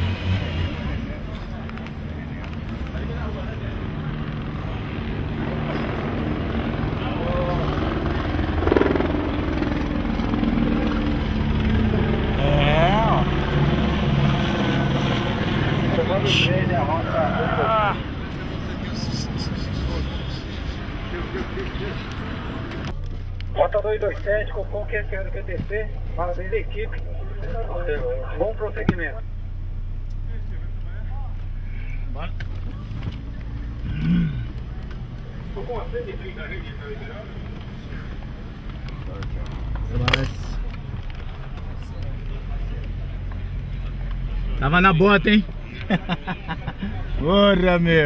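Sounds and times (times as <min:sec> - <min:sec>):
low rumble of vehicle engines: 0:00.0 - 0:48.0
indistinct voices calling out: 0:15.8 - 0:21.6.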